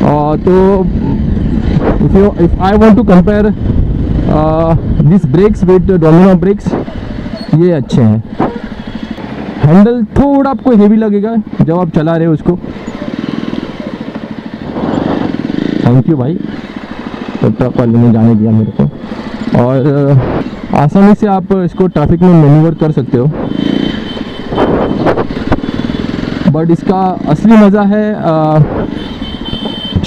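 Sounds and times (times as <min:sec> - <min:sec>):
motorcycle engine running at low revs: 0:00.0 - 0:30.0
road and wind noise: 0:00.0 - 0:30.0.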